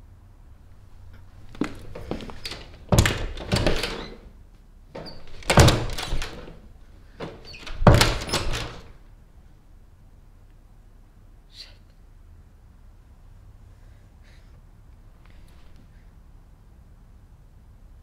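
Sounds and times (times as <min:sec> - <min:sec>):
door banging and rattling: 0:01.2 - 0:04.4, 0:05.0 - 0:09.0.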